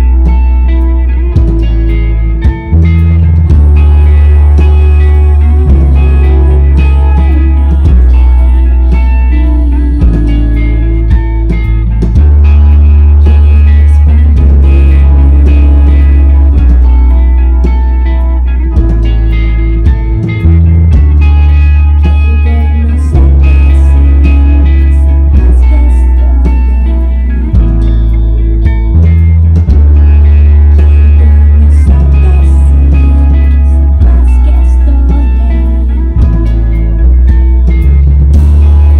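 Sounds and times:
live rock band playing: 0.0s - 38.9s.

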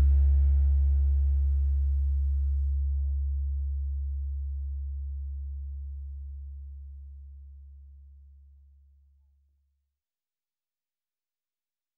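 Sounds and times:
faint higher notes: 0.0s - 2.7s
deep bass tone: 0.0s - 8.2s.

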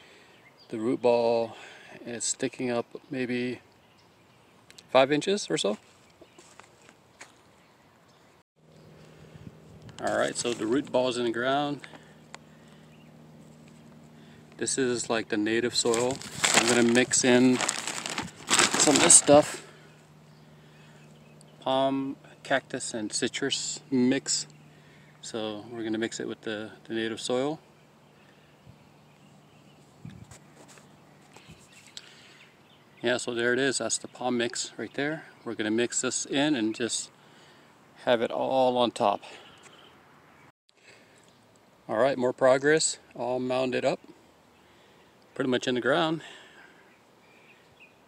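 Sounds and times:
faint steady hum: 5.9s - 35.6s, 36.3s - 38.2s, 40.8s - 48.0s
soft rustles: 15.8s - 19.6s, 29.8s - 32.0s.

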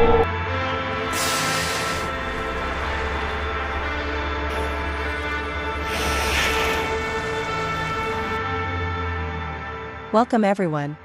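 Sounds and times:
background music with sustained chords: 0.0s - 11.0s
whale blow exhalation: 5.8s - 7.0s.

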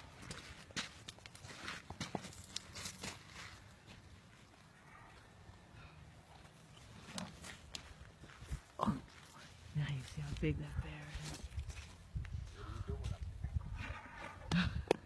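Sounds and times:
crunches and rustles of scuffling: 0.1s - 4.7s, 6.3s - 14.0s.

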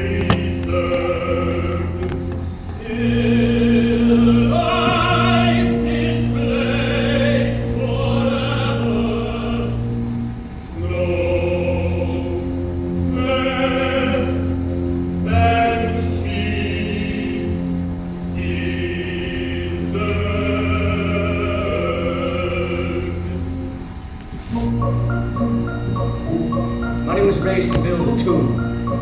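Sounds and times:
choir singing sustained notes: 0.0s - 29.0s
low held instrumental notes: 0.0s - 29.0s
orchestra playing: 0.0s - 29.0s.

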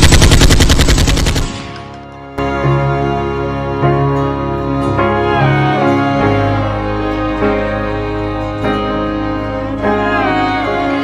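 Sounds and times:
rapid rattle of sharp bangs: 0.0s - 1.9s.

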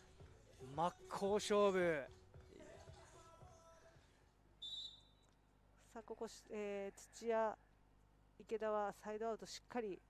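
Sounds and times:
referee's whistle blast: 4.6s - 5.2s.

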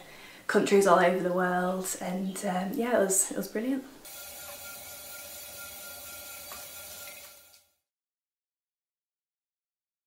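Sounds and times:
potter's wheel motor whine: 4.1s - 7.2s.

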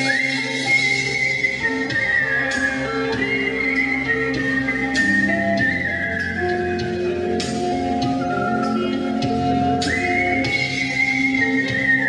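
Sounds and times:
electric bass: 0.0s - 12.0s
guitar: 0.0s - 12.0s
high whistled melody: 0.0s - 12.0s.

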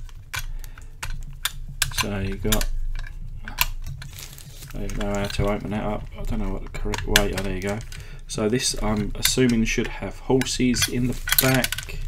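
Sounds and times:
clicks and taps handling toy: 0.0s - 12.0s.

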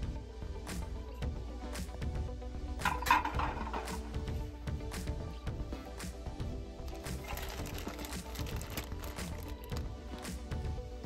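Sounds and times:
background music with held notes: 0.0s - 11.0s
plastic bag crinkling: 6.9s - 9.8s.

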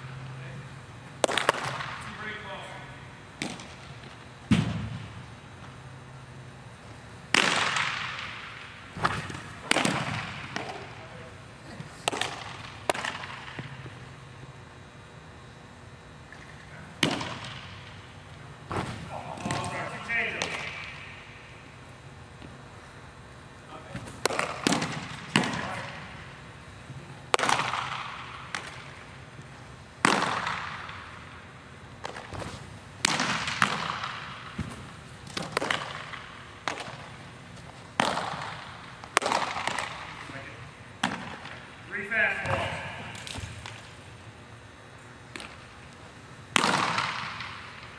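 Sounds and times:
baseballs smacking into mitts: 1.2s - 2.5s, 3.4s - 5.2s, 7.3s - 14.0s, 16.3s - 18.0s, 18.7s - 21.3s, 23.9s - 26.3s, 27.3s - 29.1s, 30.0s - 31.4s, 32.0s - 41.7s, 42.4s - 43.9s, 45.3s - 45.7s, 46.5s - 47.9s.

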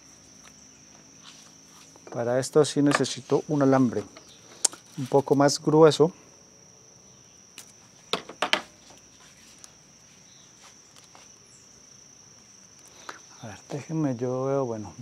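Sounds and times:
cricket trilling: 0.0s - 15.0s.

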